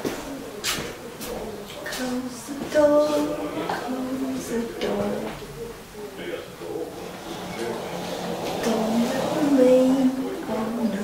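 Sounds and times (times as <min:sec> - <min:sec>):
person singing softly: 0:08.6 - 0:11.0.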